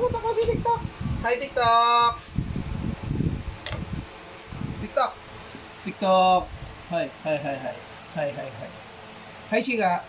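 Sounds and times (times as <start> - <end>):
phone microphone handling noise: 3.1 - 4.0.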